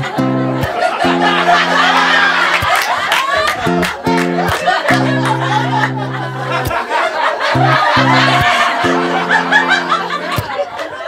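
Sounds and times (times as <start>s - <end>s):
audience laughing: 0.0s - 11.0s.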